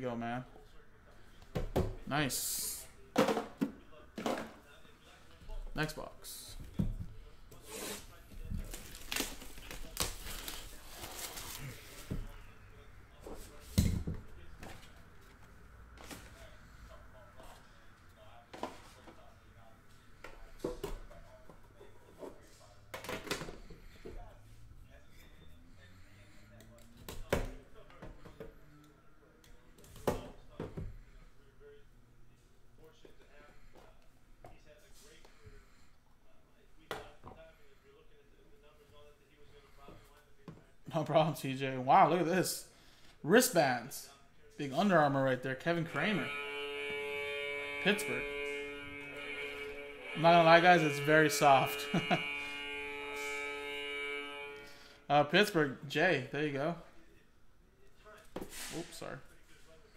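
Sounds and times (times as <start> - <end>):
man talking: 2.0 - 3.1, 3.8 - 6.8, 40.8 - 46.5, 47.6 - 52.6, 55.1 - 57.0.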